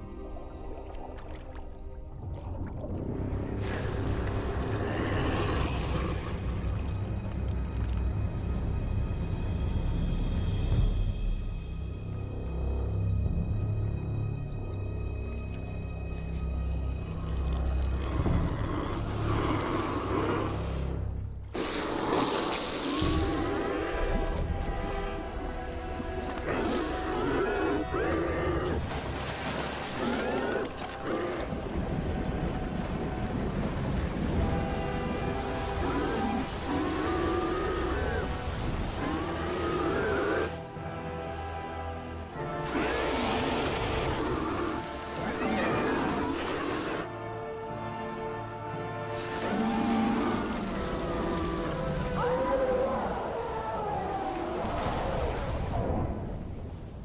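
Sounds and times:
film score sustained notes: 22.6s - 29.0s, 30.0s - 54.8s.

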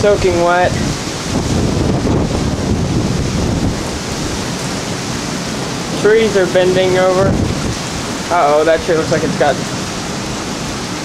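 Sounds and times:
rain falling: 0.0s - 11.0s
wind buffeting microphone: 0.0s - 11.0s
wind gusting through trees: 0.0s - 11.0s.

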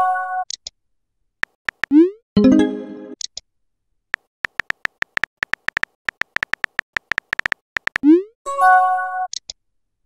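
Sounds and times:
phone keyboard key taps: 1.4s - 1.9s, 4.2s - 8.0s.

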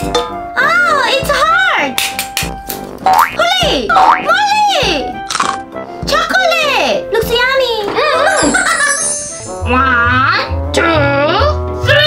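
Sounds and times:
background music: 0.0s - 12.0s
cartoon boing sound effects: 3.1s - 4.3s.

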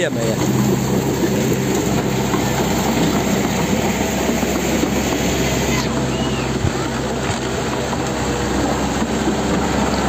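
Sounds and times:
dense rushing noise: 0.0s - 10.0s
excavator diesel engine running: 0.0s - 10.0s.

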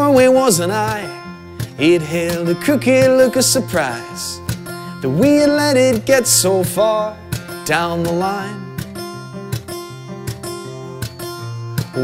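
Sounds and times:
acoustic guitar strumming: 0.0s - 12.0s.

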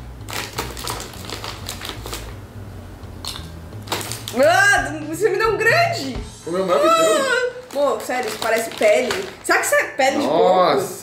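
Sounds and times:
snack bag crackling and rustling: 0.2s - 2.4s, 3.2s - 4.6s, 6.5s - 9.8s.

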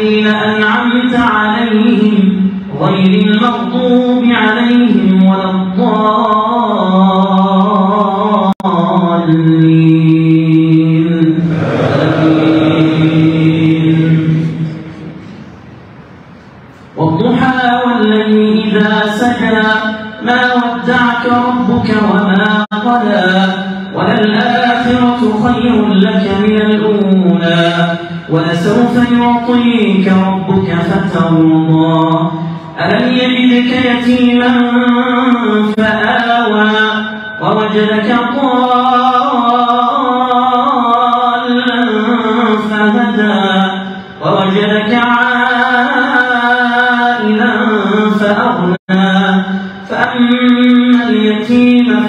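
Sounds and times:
man chanting through loudspeaker: 0.0s - 15.7s, 16.7s - 52.0s
many voices together: 11.4s - 15.6s.

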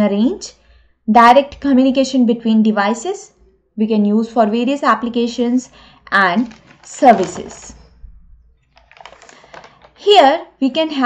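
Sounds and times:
rapid small clicks: 8.6s - 10.0s.

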